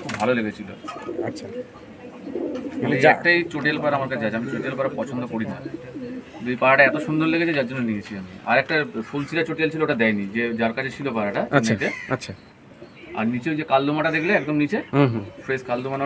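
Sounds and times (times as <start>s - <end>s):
pigeons cooing: 0.0s - 16.0s
man speaking: 13.2s - 16.0s.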